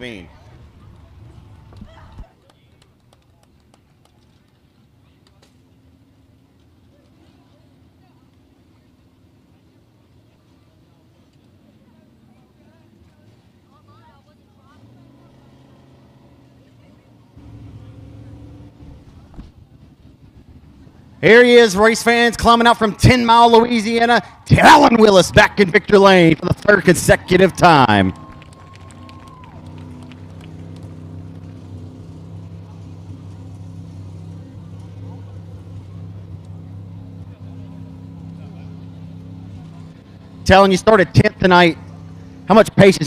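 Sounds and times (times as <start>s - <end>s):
distant voices: 0.0s - 43.0s
low engine sound: 0.0s - 43.0s
steady low engine hum: 0.0s - 43.0s.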